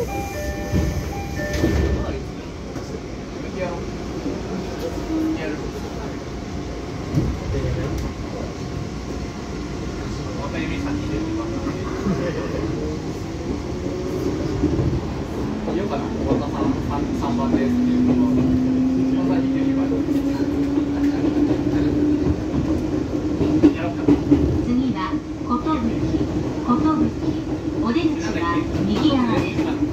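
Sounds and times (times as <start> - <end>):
train wheels rumbling on rail: 0.0 - 29.9.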